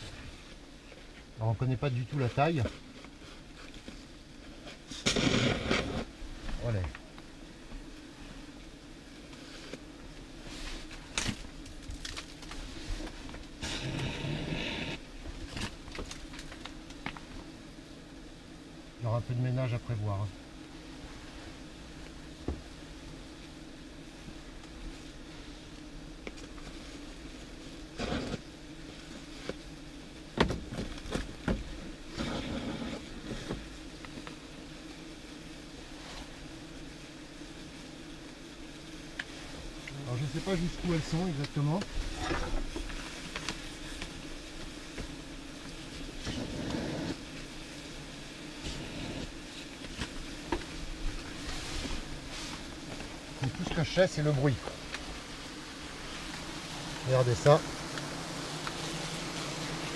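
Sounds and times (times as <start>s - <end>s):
wasps buzzing: 0.0s - 59.9s
rustles and knocks: 30.3s - 34.4s.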